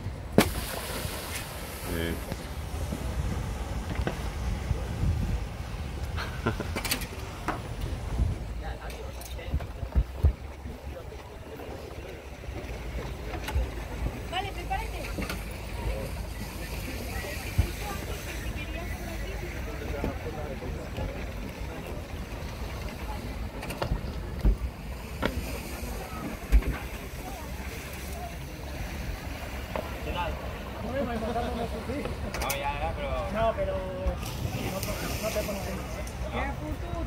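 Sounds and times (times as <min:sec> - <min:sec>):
wind buffeting microphone: 0:00.0 - 0:08.8
faint distant voices: 0:00.0 - 0:37.0.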